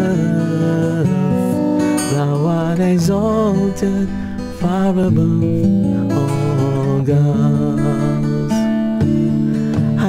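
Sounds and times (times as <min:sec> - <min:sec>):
acoustic guitar strumming: 0:00.0 - 0:10.0
man singing: 0:00.0 - 0:10.0.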